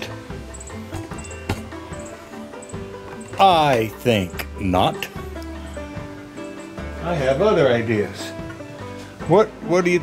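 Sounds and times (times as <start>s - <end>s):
soft background music: 0.0s - 10.0s.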